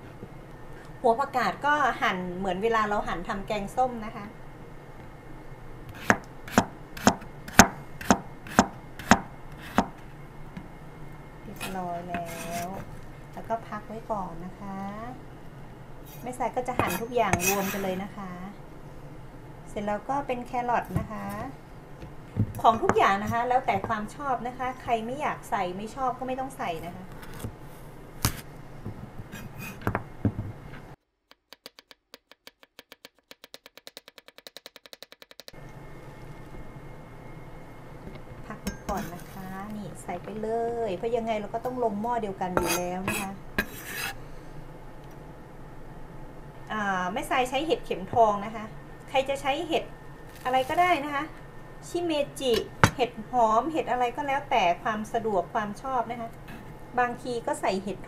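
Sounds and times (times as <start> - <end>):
knife chopping on cutting board: 5.9 - 10.0
knife chopping on plastic board: 5.9 - 10.0, 31.3 - 35.5.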